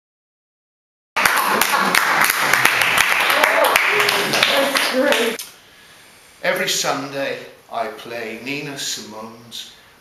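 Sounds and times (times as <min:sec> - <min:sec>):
audience clapping: 0:01.2 - 0:05.4
audience voices: 0:01.2 - 0:05.4.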